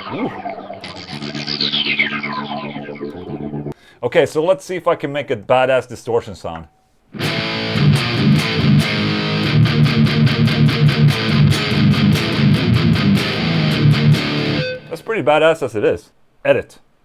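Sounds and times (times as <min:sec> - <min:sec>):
distorted electric guitar riff: 0:00.0 - 0:03.8, 0:07.2 - 0:15.0.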